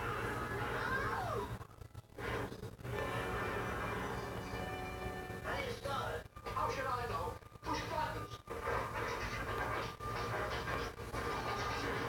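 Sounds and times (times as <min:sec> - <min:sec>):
indistinct television speech: 0:00.0 - 0:12.0.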